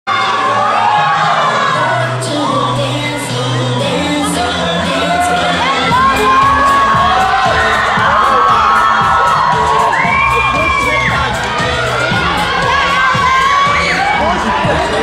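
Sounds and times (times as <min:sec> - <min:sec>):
audience screaming and cheering: 0:00.1 - 0:15.0.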